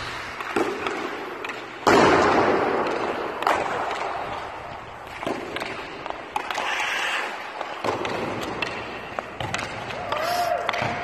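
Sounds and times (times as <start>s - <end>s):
hockey stick cracking on puck: 0.0s - 11.0s.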